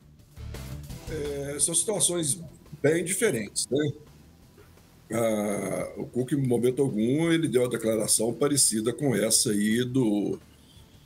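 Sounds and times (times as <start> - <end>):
man's drawn-out hesitation sound: 1.1 - 4.1.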